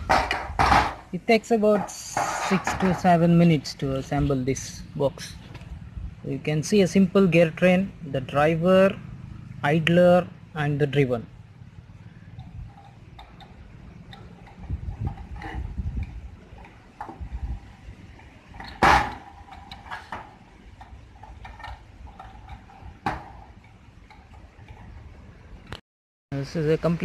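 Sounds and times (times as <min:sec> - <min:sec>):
low rumble of handling: 0:00.0 - 0:07.1, 0:11.2 - 0:25.8
metal parts clicking and knocking: 0:01.7 - 0:03.2, 0:12.1 - 0:25.1.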